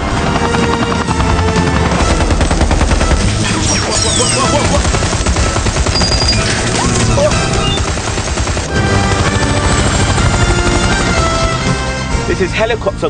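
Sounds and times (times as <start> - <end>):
helicopter rotor chopping: 0.0 - 12.9
helicopter turbine running: 0.0 - 12.9
film music score: 0.0 - 13.0
gunfire: 2.0 - 11.8.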